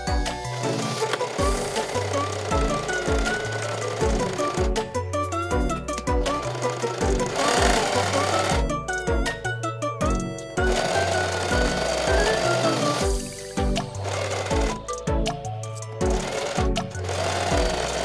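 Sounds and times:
background music with steady beat: 0:00.0 - 0:18.0
electric sewing machine stitching: 0:00.1 - 0:08.9, 0:10.1 - 0:14.9, 0:16.0 - 0:18.0.

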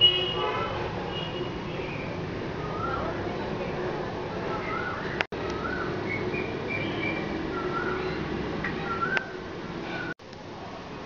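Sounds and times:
vehicle horn: 0:00.0 - 0:01.6
traffic noise: 0:00.0 - 0:11.0.

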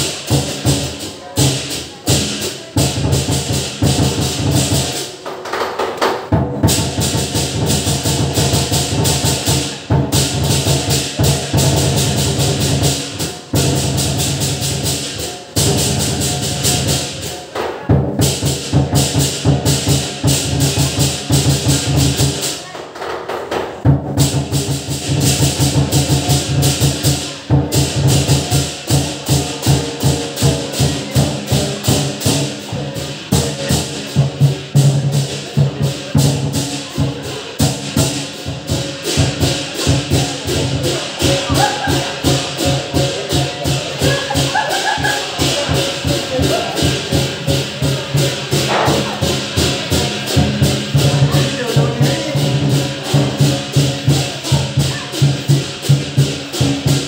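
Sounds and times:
clashing cymbals: 0:00.0 - 0:05.2, 0:06.3 - 0:22.7, 0:23.8 - 0:57.0
large drum beaten fast: 0:00.0 - 0:05.3, 0:06.1 - 0:22.7, 0:23.5 - 0:57.0.

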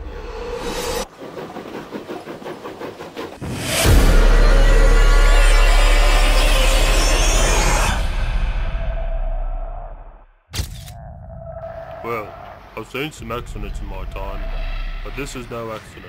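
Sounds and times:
train chugging: 0:01.0 - 0:05.2
dramatic trailer music: 0:03.4 - 0:16.0.

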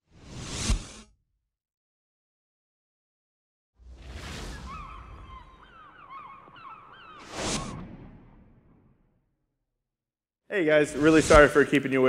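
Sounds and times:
whoosh sound effect: 0:07.2 - 0:08.1, 0:10.9 - 0:11.6.

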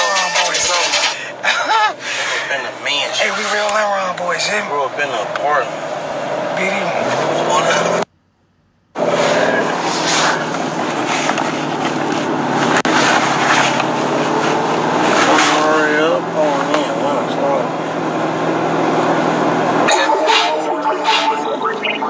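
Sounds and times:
men talking: 0:00.0 - 0:05.8, 0:06.5 - 0:08.1, 0:15.2 - 0:17.8, 0:19.8 - 0:22.0
moving car rushing drone: 0:00.0 - 0:08.1, 0:09.0 - 0:22.0.

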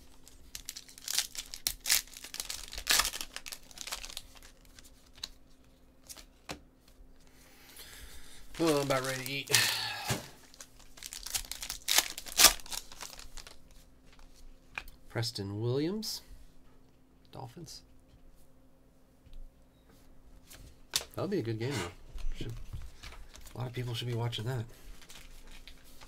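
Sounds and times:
foil wrapper tearing and crinkling: 0:00.1 - 0:05.4, 0:08.6 - 0:14.3, 0:25.0 - 0:26.0
cards being handled: 0:08.6 - 0:14.9, 0:25.0 - 0:26.0.

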